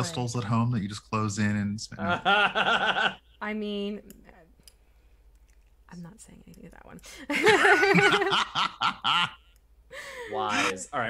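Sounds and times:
person speaking: 0.0s - 0.9s, 10.2s - 11.0s.

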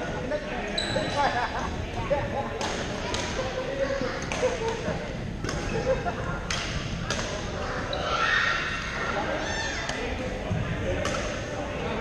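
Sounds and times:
murmur of voices in gym: 0.0s - 12.0s
rackets striking shuttlecock: 2.6s - 3.4s, 5.4s - 5.7s, 6.4s - 7.4s, 11.0s - 11.4s.

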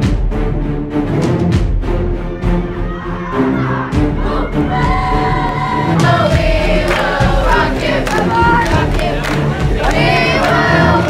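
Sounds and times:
students singing and chanting: 2.8s - 11.0s.

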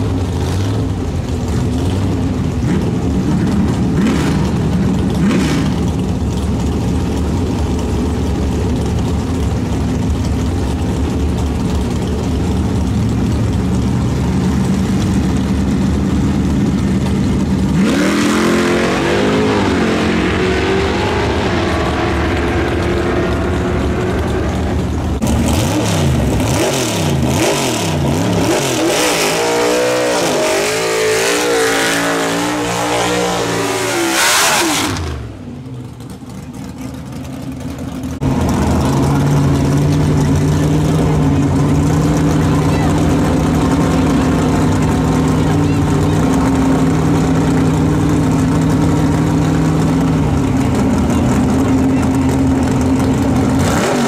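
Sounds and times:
drag race car engine revving: 0.0s - 54.0s
engine revving through burnout: 2.6s - 5.9s, 17.7s - 35.5s, 50.4s - 54.0s.

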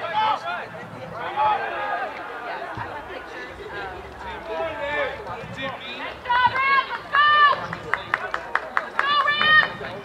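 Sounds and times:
sharp claps: 7.5s - 9.8s.

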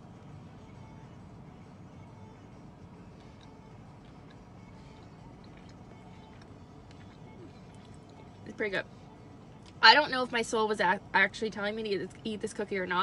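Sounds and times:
low steady hum: 0.0s - 13.0s
chewing cookie: 3.1s - 8.5s.

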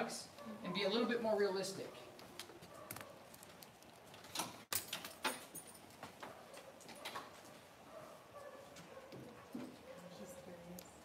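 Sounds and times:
footsteps and dogs on concrete: 0.0s - 11.0s.

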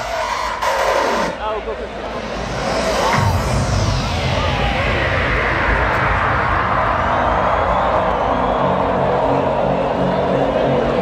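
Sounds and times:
hardcore dance music: 0.0s - 7.7s
low synth line: 1.9s - 6.8s.

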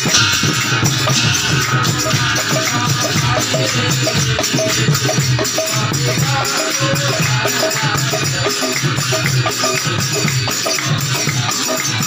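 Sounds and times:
barrel drum beaten fast: 0.0s - 12.0s
small hand cymbals jangling: 0.0s - 12.0s.

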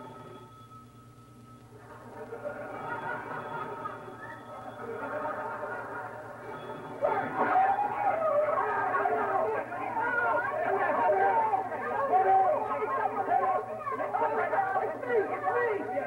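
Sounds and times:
overlapping voices talking: 1.8s - 16.0s.

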